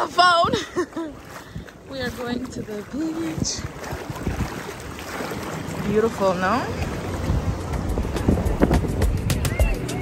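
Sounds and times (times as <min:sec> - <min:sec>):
seawater sloshing and splashing: 0:00.0 - 0:10.0
wind buffeting microphone: 0:00.0 - 0:10.0.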